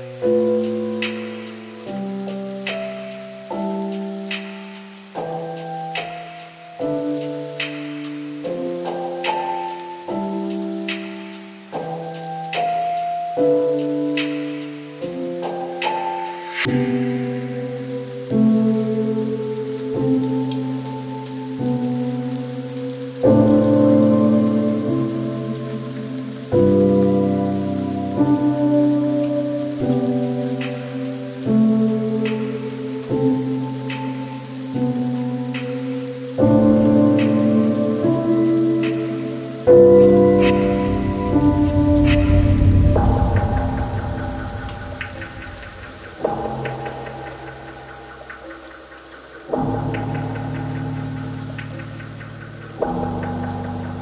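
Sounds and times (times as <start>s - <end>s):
rain: 0.0s - 54.0s
soft lo-fi piano chords: 0.0s - 54.0s.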